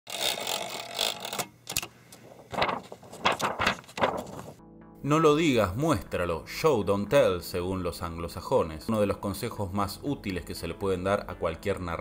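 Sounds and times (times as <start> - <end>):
typewriter clatter: 2.5 - 4.6.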